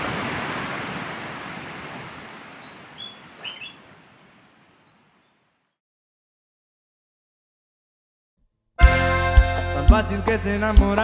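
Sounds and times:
surf-like noise: 0:00.0 - 0:04.9
high bird chirps: 0:02.6 - 0:03.8.

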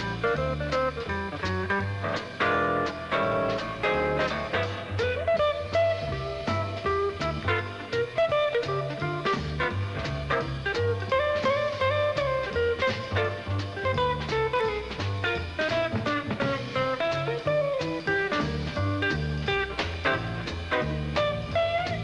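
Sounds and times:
drums: 0:00.0 - 0:22.0
upright bass: 0:00.0 - 0:22.0.

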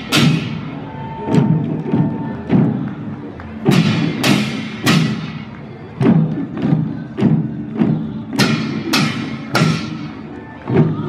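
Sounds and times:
drums beaten in unison: 0:00.0 - 0:11.0.

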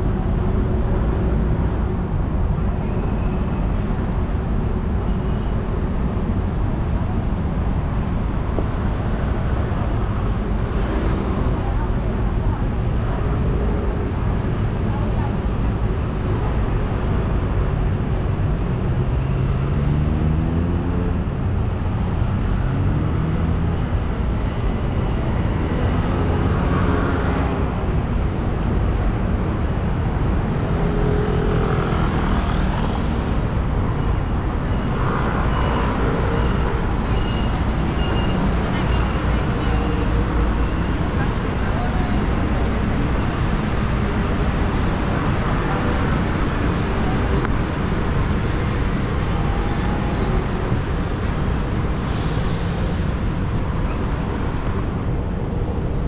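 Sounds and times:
rumble of passing traffic: 0:00.0 - 0:56.0
voices of passers-by: 0:00.0 - 0:56.0.

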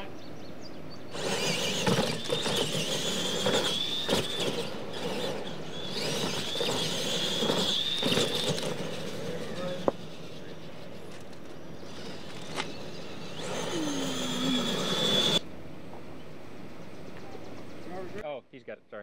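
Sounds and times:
electric motors whining: 0:01.0 - 0:18.2.

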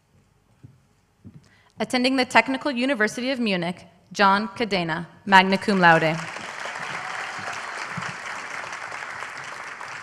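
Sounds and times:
audience applauding: 0:05.8 - 0:10.0.

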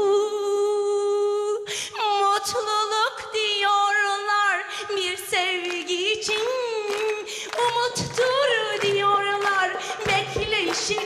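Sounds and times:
woman singing unaccompanied: 0:00.0 - 0:11.0
quick breath: 0:07.3 - 0:07.6.

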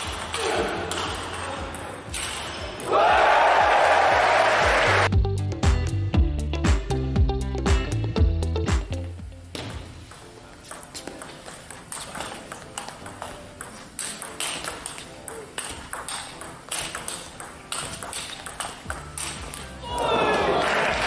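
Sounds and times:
background music: 0:00.0 - 0:21.0
table tennis ball clicking: 0:10.1 - 0:19.7.

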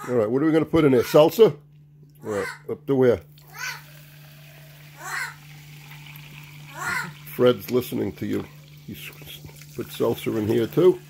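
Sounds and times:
liquid pouring into cup: 0:03.3 - 0:11.0.

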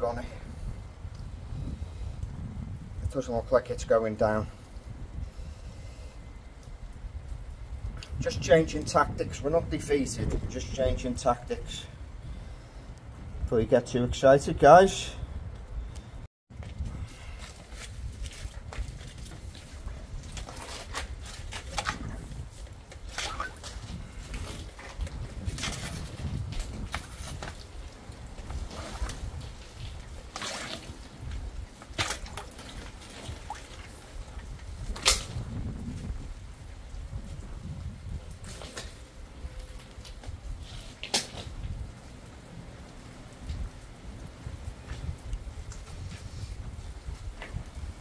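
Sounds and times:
water sloshing and splashing: 0:18.0 - 0:35.5.

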